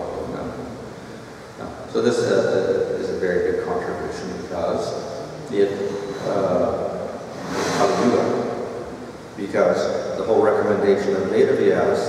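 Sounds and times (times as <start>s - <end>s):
man speaking hesitantly: 1.6s - 7.1s
breath rush into microphone: 7.3s - 8.1s.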